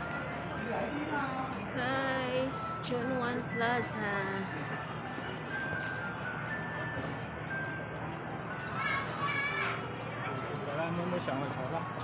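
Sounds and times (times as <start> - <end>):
crowd murmur: 3.3 - 12.0
children calling out in play: 8.7 - 9.9.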